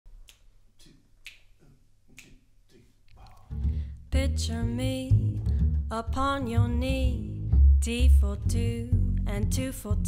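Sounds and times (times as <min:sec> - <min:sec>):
finger snaps keeping time: 0:00.1 - 0:03.6
low bass: 0:03.2 - 0:10.0.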